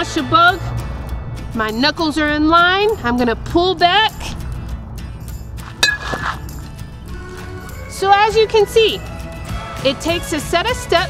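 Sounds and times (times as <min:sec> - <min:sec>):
background music: 0:00.0 - 0:11.0
metal bat hitting baseball: 0:05.6 - 0:06.7.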